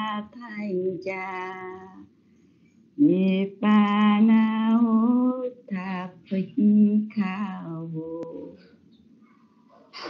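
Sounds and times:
click: 8.2s - 9.0s.

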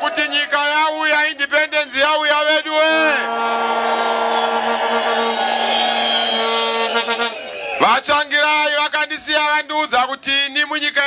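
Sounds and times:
rally crowd noise: 0.0s - 11.0s
horn blown on one pitch: 3.1s - 7.6s.

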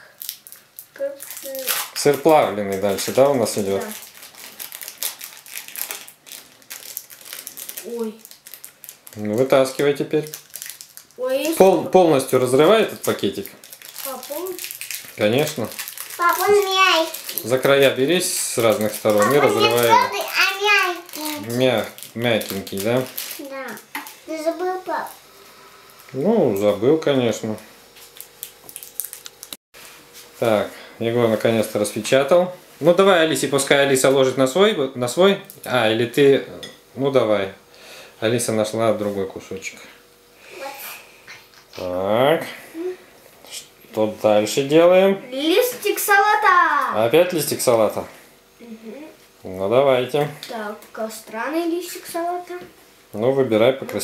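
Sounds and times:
plastic wrapper crinkling: 0.0s - 25.2s, 27.9s - 29.6s.

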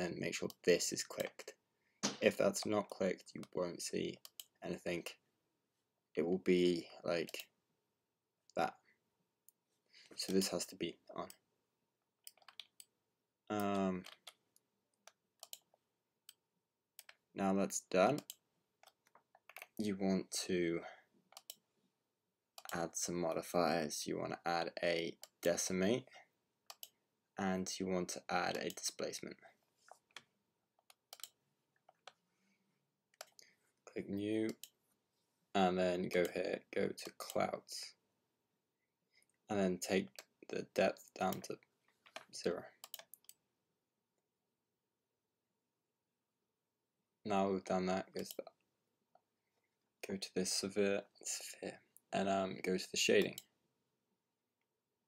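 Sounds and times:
computer mouse click: 15.0s - 15.7s, 18.2s - 19.7s, 21.3s - 21.6s, 26.7s - 26.9s, 30.1s - 32.2s, 42.8s - 43.4s.

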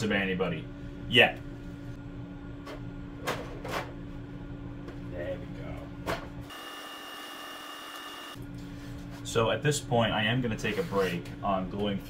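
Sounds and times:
steady low hum: 0.0s - 6.5s.

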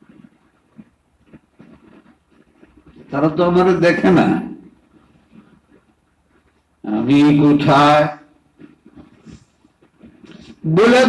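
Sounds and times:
faint low murmurs: 0.0s - 11.0s
man speaking: 3.1s - 4.6s, 6.8s - 8.3s, 10.4s - 11.0s.

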